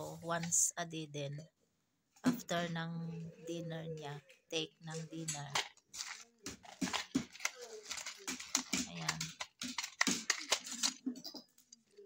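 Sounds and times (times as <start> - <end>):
plastic bag crinkling: 4.9 - 12.0.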